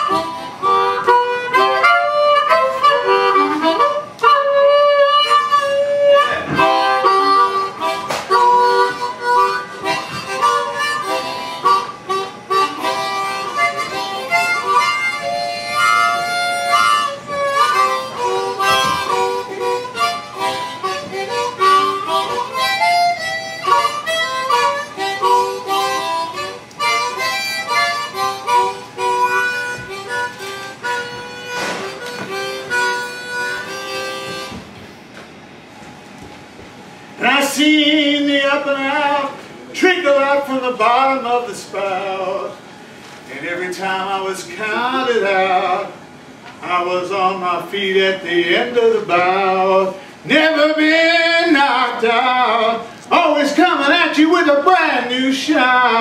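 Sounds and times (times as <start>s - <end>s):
harmonica playing: 0.0s - 34.8s, 48.6s - 56.0s.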